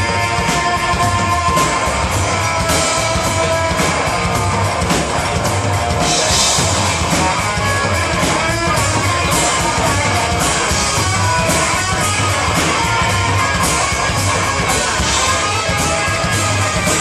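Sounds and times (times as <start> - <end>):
drum kit beat: 0.0 - 17.0
electric guitar: 0.0 - 17.0.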